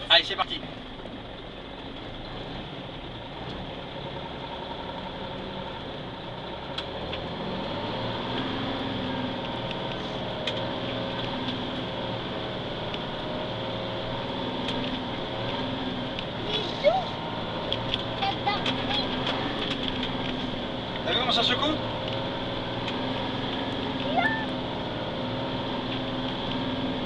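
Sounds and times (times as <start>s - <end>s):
truck diesel engine running: 0.0s - 27.0s.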